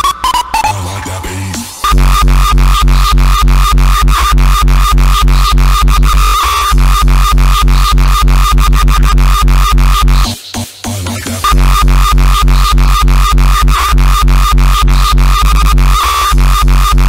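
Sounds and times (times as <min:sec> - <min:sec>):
heavy kick drum pounding: 0:01.7 - 0:10.2, 0:11.4 - 0:17.0
synth line: 0:01.8 - 0:10.3.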